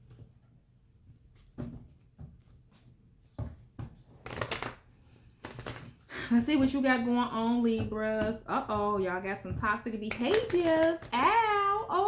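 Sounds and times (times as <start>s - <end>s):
cards being shuffled: 4.1s - 6.1s, 10.1s - 11.9s.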